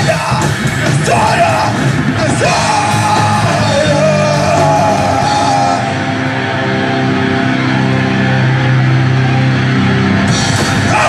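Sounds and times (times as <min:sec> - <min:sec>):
person singing and yelling: 0:00.0 - 0:06.3, 0:10.8 - 0:11.0
drums: 0:00.0 - 0:11.0
electric guitars: 0:00.0 - 0:11.0.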